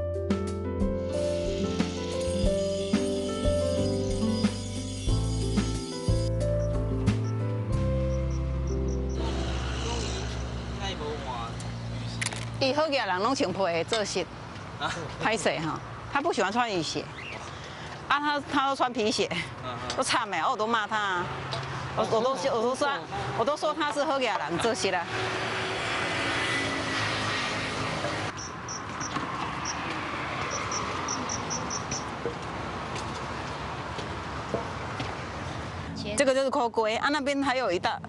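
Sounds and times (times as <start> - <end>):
background music: 0.0 - 11.2
road traffic rumble: 0.9 - 38.0.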